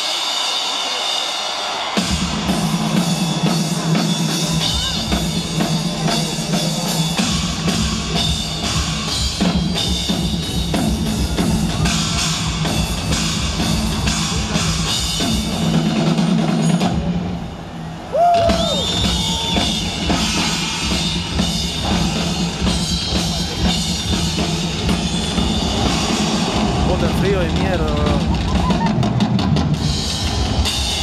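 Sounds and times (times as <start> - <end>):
rock drum solo: 0.0 - 31.0.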